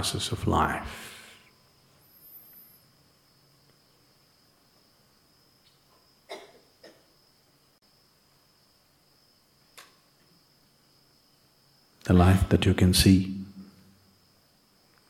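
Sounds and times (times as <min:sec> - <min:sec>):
faint high-pitched whine: 0:00.0 - 0:15.0.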